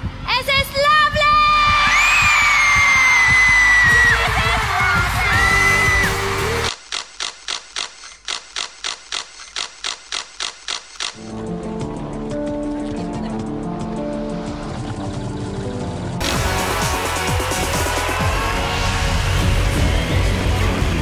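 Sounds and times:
camera shutter clicks: 6.7s - 11.2s
soft music: 11.2s - 21.0s
loud music with held note: 16.2s - 21.0s.

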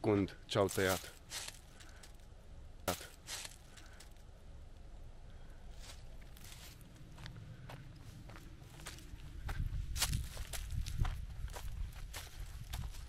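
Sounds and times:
footsteps on dry leaves and twigs: 0.5s - 2.3s, 2.9s - 4.3s, 5.7s - 13.0s.

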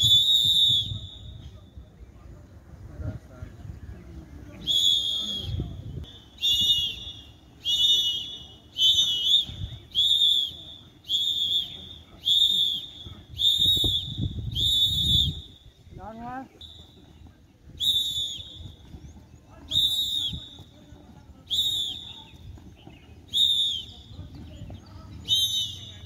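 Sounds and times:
whistle short blasts: 0.0s - 1.8s, 4.6s - 15.8s, 16.4s - 18.9s, 19.6s - 22.4s, 23.3s - 24.3s, 25.2s - 26.0s.

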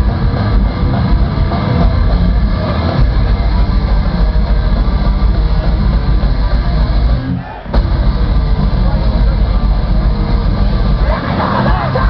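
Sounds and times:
metalcore band playing live: 0.0s - 12.0s
shouted vocal: 11.0s - 12.0s.

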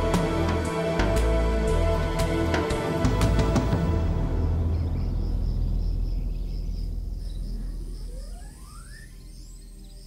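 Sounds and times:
deep electronic drone: 0.0s - 10.0s
high pulsing chirp: 4.3s - 10.0s
synth sweep rising in pitch: 7.6s - 9.6s.

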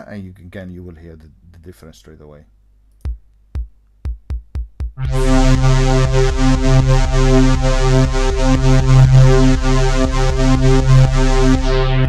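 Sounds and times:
electronic kick drum: 3.0s - 12.0s.

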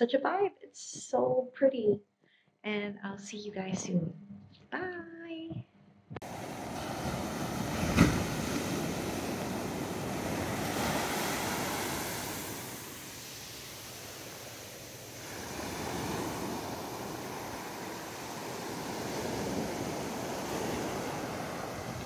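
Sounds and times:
small waves washing up a beach: 6.2s - 22.0s.

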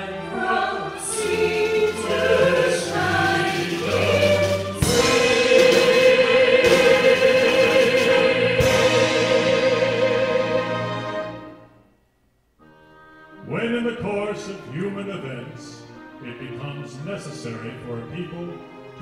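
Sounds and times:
man and woman singing: 0.0s - 11.0s
orchestral accompaniment: 0.0s - 11.9s, 12.6s - 19.0s.

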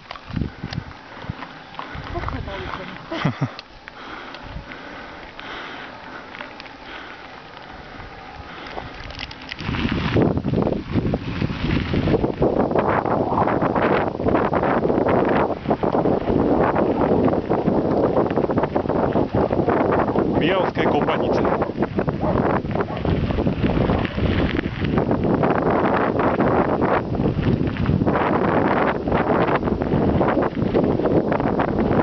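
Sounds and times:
bicycle rolling on gravel: 0.0s - 32.0s
wind rushing on microphone: 0.0s - 32.0s.

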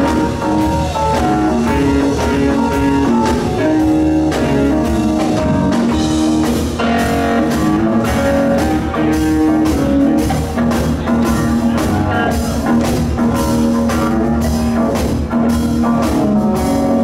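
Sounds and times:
blues-rock band playing: 0.0s - 17.0s.

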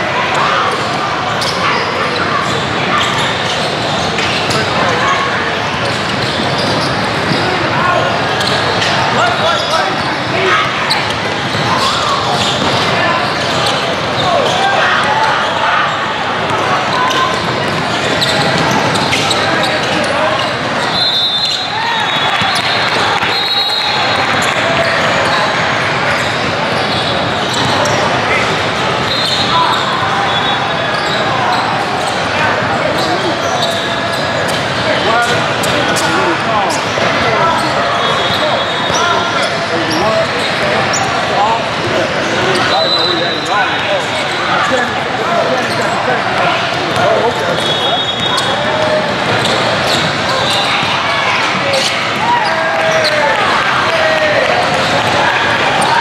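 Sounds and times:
crowd chatter in hall: 0.0s - 56.0s
sneaker squeaks: 0.2s - 53.4s.

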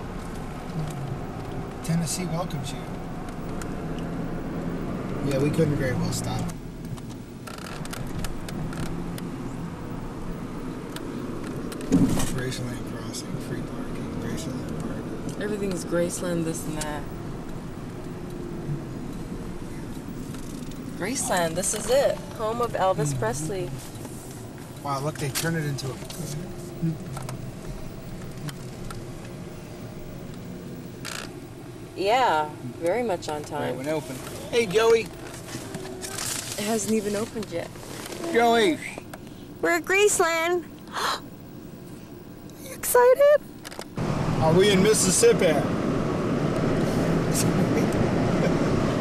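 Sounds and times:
car road and engine noise: 0.0s - 49.0s.

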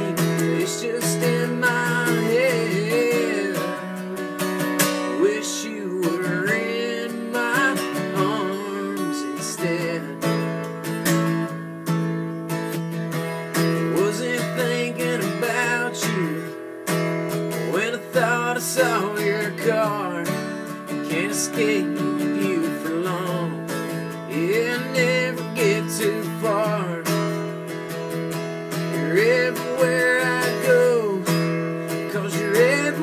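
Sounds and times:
man singing: 0.0s - 10.9s, 13.4s - 16.8s, 17.4s - 27.7s, 28.7s - 33.0s
strummed acoustic guitar: 0.0s - 33.0s.

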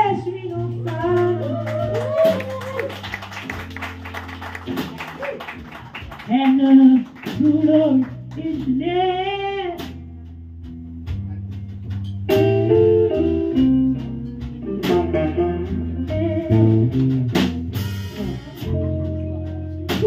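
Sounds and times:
walking electric bass line: 0.0s - 20.0s.

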